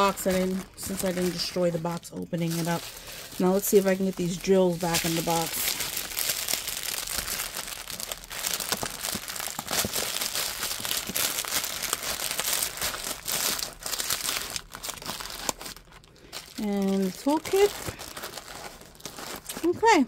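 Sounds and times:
plastic bags crinkling: 0:00.0 - 0:20.0.

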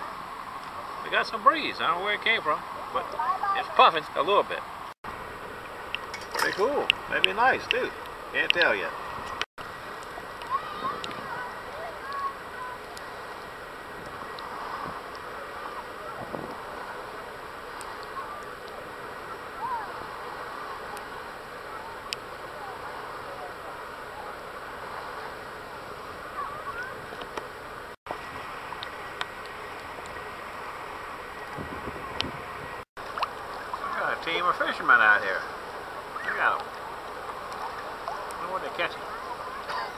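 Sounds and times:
distant voices: 0:00.0 - 0:39.9
light breeze: 0:00.0 - 0:39.9
water washing: 0:00.0 - 0:39.9.

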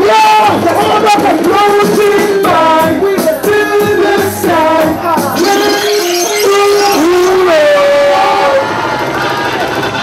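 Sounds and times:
person singing into microphone: 0:00.0 - 0:08.6
backing music: 0:00.0 - 0:10.0
crowd noise: 0:00.0 - 0:10.0.

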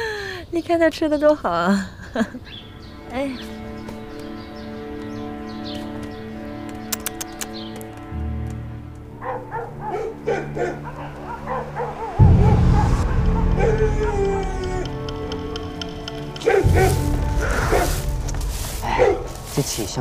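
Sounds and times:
orchestral background music: 0:02.5 - 0:20.0
dogs barking and yipping: 0:09.1 - 0:18.0, 0:18.8 - 0:19.4.

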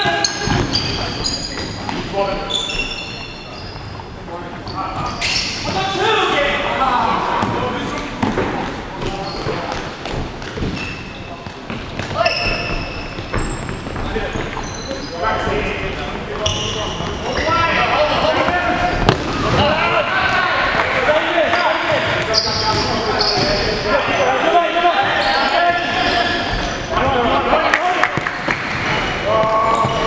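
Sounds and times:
shoes squeaking on wooden floor: 0:00.1 - 0:06.0, 0:09.0 - 0:19.2, 0:21.6 - 0:27.1, 0:28.7 - 0:30.0
players calling out: 0:11.8 - 0:30.0.

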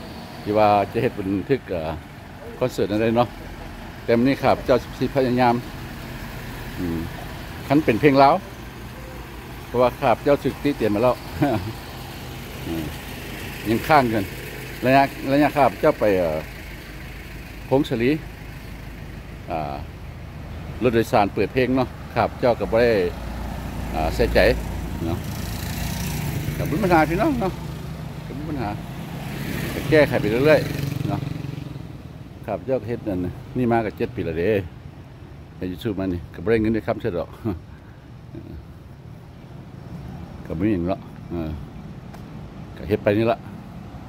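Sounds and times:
van engine idling: 0:00.0 - 0:31.2
man speaking: 0:00.4 - 0:05.7, 0:06.7 - 0:09.1, 0:09.7 - 0:11.8, 0:12.6 - 0:13.0, 0:13.6 - 0:16.5, 0:17.7 - 0:18.2, 0:19.5 - 0:19.9, 0:20.8 - 0:23.2, 0:23.9 - 0:25.3, 0:26.6 - 0:27.6
motorcycle engine passing: 0:23.4 - 0:32.0.

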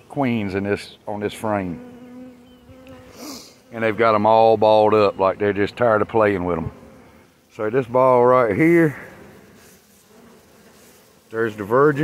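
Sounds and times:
honey bees humming: 0:00.0 - 0:12.0.

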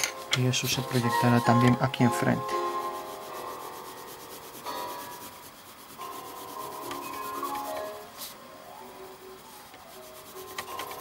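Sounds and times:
soft background music: 0:00.0 - 0:11.0
pencil scratching on paper: 0:00.6 - 0:08.4, 0:09.6 - 0:11.0.

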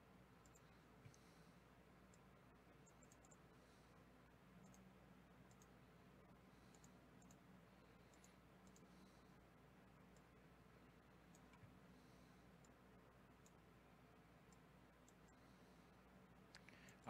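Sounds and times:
faint room hum: 0:00.0 - 0:17.0
computer mouse clicks: 0:00.4 - 0:01.3, 0:02.0 - 0:03.5, 0:04.6 - 0:05.8, 0:06.6 - 0:09.1, 0:10.0 - 0:10.4, 0:11.2 - 0:11.8, 0:12.5 - 0:13.7, 0:14.4 - 0:15.4.

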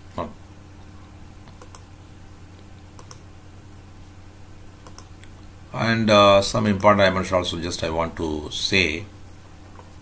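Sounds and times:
low electrical hum: 0:00.0 - 0:10.0
keyboard clicks: 0:01.4 - 0:01.9, 0:03.0 - 0:03.2, 0:04.8 - 0:05.3.

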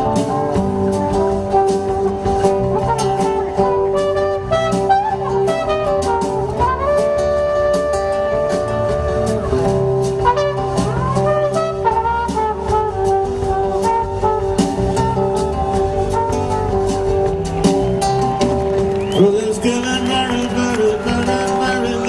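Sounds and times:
trumpet solo: 0:00.0 - 0:17.5
band with drums: 0:00.0 - 0:22.0.

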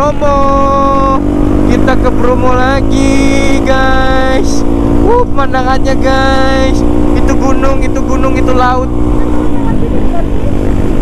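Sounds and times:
man singing gliding notes: 0:00.0 - 0:08.9
motorcycle engine running: 0:00.0 - 0:11.0.

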